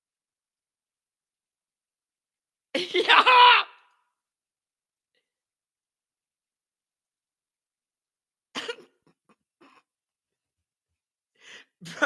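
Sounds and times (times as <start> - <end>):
man coughing while laughing: 8.6 - 9.2.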